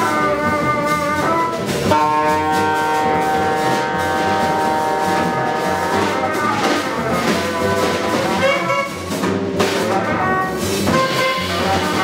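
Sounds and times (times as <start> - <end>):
horns holding long notes: 0.0 - 9.2, 9.8 - 12.0
free jazz quartet playing: 0.0 - 12.0.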